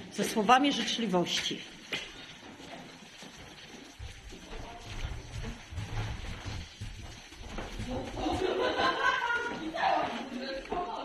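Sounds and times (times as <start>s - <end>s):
footsteps in corridor: 0.0s - 11.0s
children's voices: 8.0s - 11.0s.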